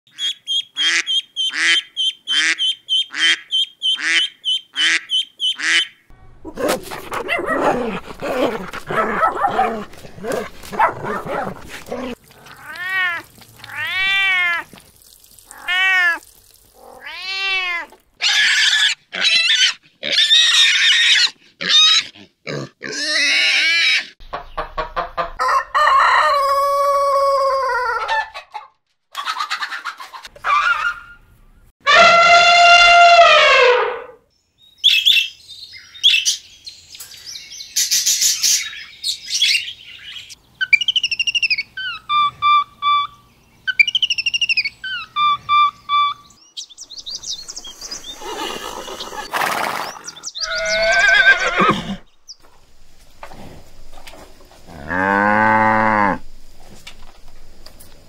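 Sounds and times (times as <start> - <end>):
cat meowing: 15.5 - 16.2
rough animal calls: 47.7 - 52.1.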